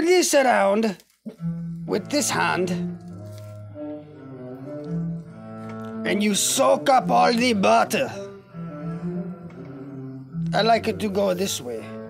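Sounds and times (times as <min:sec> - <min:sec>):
slow low held music notes: 0:01.3 - 0:12.0.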